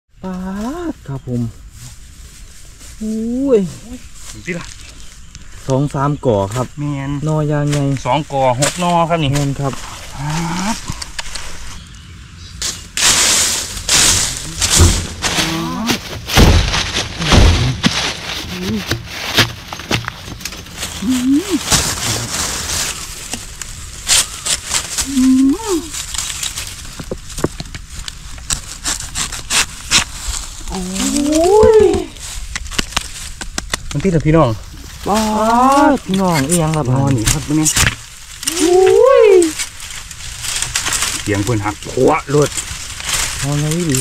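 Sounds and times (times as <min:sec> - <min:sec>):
dry leaves crackling and rustling: 0:00.2 - 0:44.0
person's drawn-out exclamation: 0:25.0 - 0:25.9, 0:30.7 - 0:32.2, 0:38.4 - 0:39.6.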